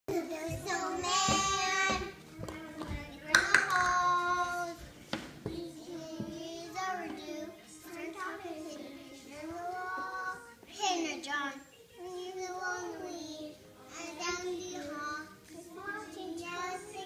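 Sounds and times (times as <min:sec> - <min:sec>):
child singing: 0:00.1 - 0:17.0
sharp claps: 0:03.3 - 0:04.0.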